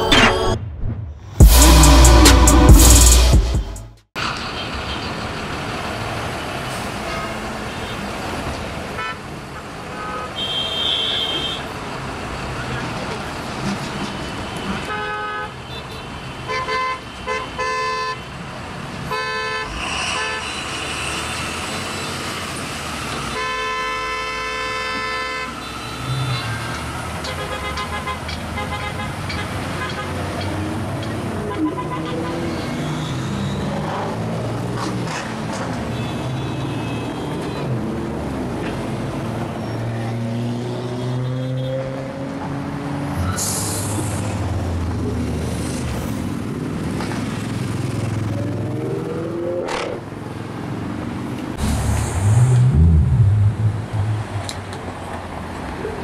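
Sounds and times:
city street traffic: 0.0 - 56.0
car horns honking: 9.9 - 11.6, 19.1 - 21.1, 23.2 - 30.3, 31.3 - 33.1.

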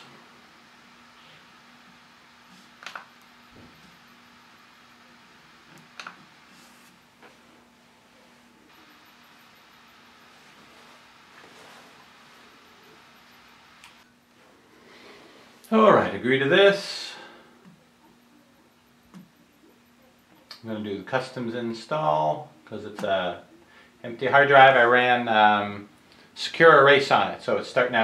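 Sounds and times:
faint steady hum: 0.0 - 28.0.

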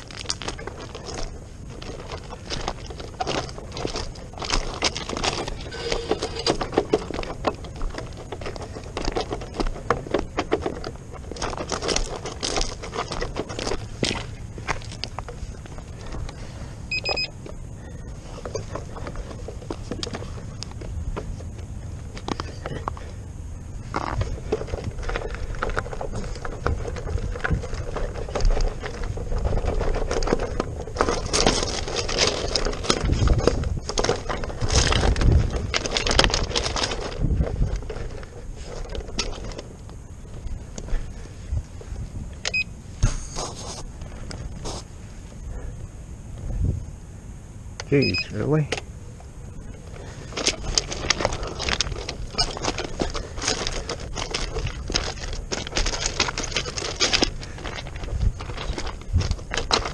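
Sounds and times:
footsteps crunching on gravel: 0.0 - 45.6, 49.2 - 59.9
tyre rolling over stones: 0.0 - 46.8, 47.9 - 59.9
short electronic beep: 5.7 - 6.5, 16.9 - 17.3, 48.0 - 48.4.

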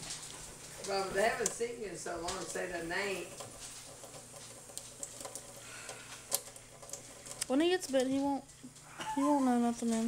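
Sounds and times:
faint ticks and splashes: 0.0 - 8.9.

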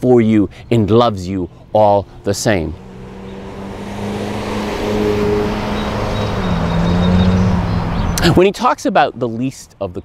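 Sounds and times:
road noise: 0.0 - 10.0
vehicle engine hum: 0.5 - 8.4.

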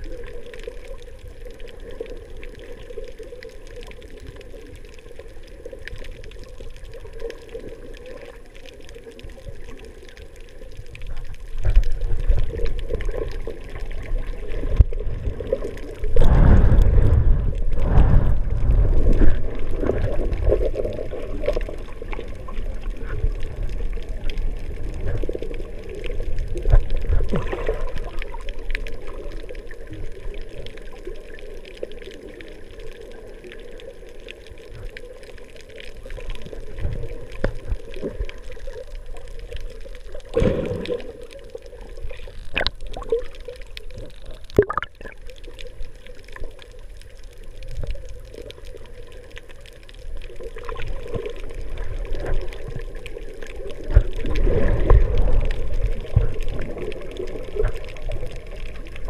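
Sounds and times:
underwater water sloshing and gurgling: 0.0 - 59.0.

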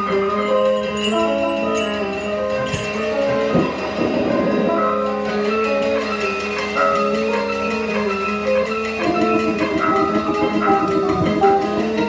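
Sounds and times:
grainy cluster of sound: 1.0 - 6.8
improvised electronic music: 1.7 - 12.0.

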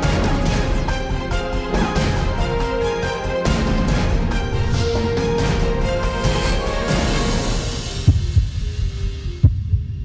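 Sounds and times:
deep drum beats: 0.0 - 10.0.

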